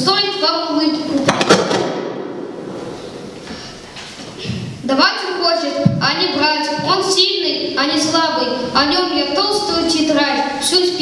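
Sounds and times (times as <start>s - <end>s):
boy reciting through microphone: 0.0s - 1.4s, 4.4s - 11.0s
sharp knocks echoing in hall: 1.1s - 4.9s, 5.7s - 7.2s.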